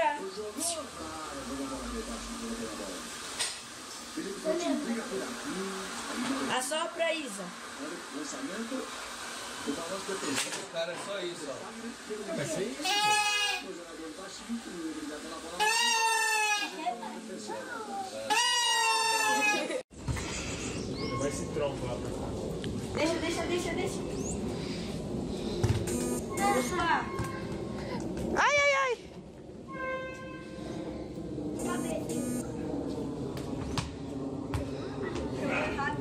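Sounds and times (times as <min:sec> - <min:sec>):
buzzy toy horn: 0:18.3 - 0:19.4, 0:25.9 - 0:26.8
indistinct voices speaking: 0:25.9 - 0:27.1, 0:31.5 - 0:32.7.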